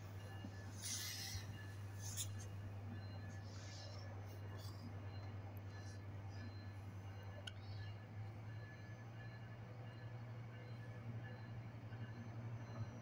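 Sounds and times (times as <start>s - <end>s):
diesel locomotive hum: 0.0s - 13.0s.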